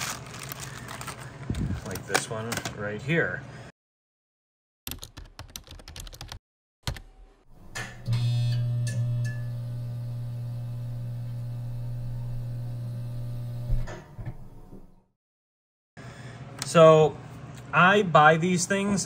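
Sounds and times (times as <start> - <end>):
computer keyboard typing: 4.9 - 7.0.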